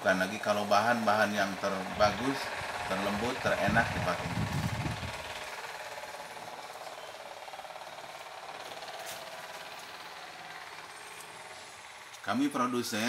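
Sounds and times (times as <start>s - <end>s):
machinery rattling: 0.0s - 13.0s.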